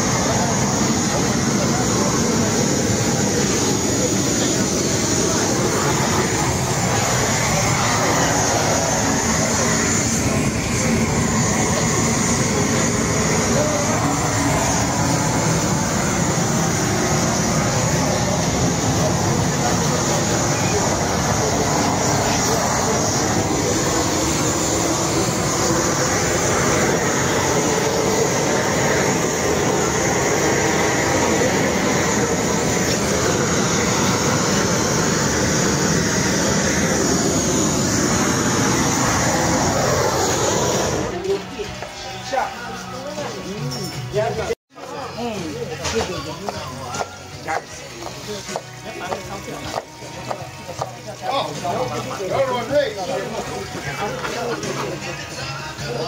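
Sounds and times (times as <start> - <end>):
gas torch flame roaring: 0.0 - 41.4
faint voices: 0.0 - 56.0.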